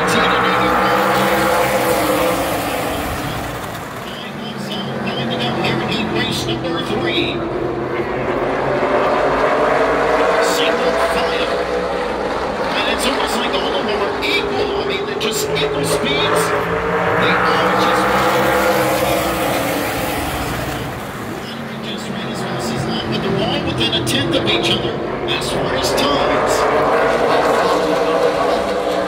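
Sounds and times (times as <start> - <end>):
race car engines passing: 0.0 - 29.0.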